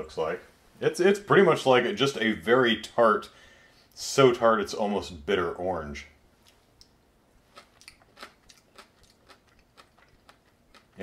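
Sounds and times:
wet mouth clicks of chewing: 6.5s - 11.0s.

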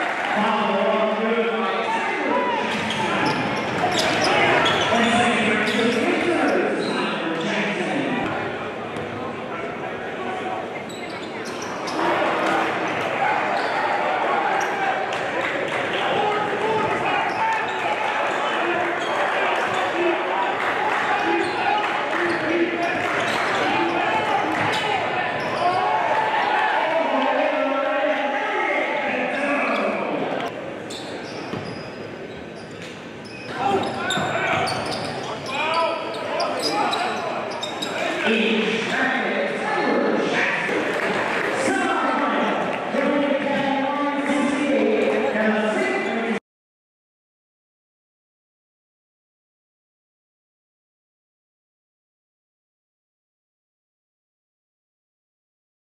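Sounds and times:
crowd voices and shouts: 0.0s - 46.4s
sneaker squeaks: 2.6s - 7.1s, 10.8s - 14.0s, 21.3s - 25.9s, 30.8s - 38.2s.

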